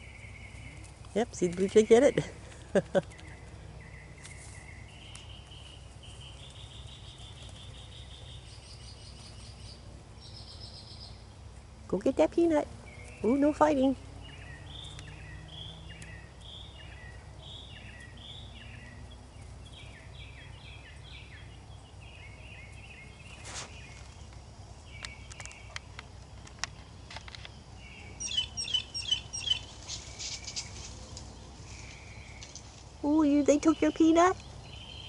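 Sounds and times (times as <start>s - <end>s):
songbirds chirping: 0.0s - 35.0s.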